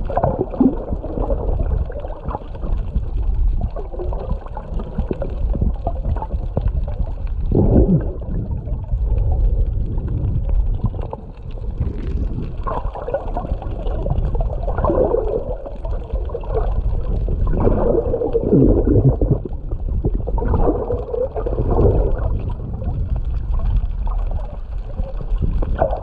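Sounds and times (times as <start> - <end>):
muffled underwater rumble: 0.0 - 26.0
underwater whooshing swells: 0.0 - 26.0.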